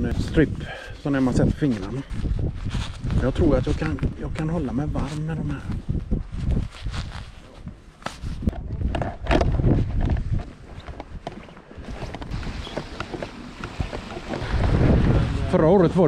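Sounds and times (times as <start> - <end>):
wind rumbling on microphone: 0.0 - 16.0
footsteps on muddy path: 9.7 - 15.3.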